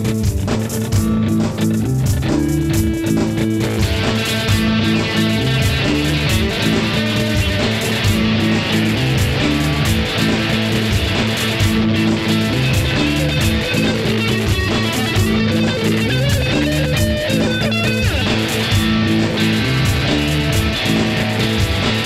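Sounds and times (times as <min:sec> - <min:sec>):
electric guitar riffs: 0:00.0 - 0:22.0
foot-stomped percussion beat: 0:00.0 - 0:22.0.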